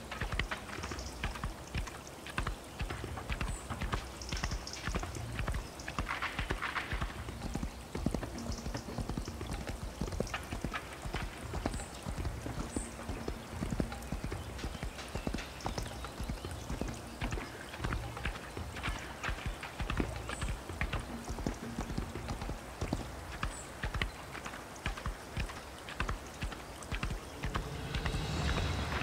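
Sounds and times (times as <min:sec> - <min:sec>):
horse hoofbeats running: 0:00.0 - 0:29.0.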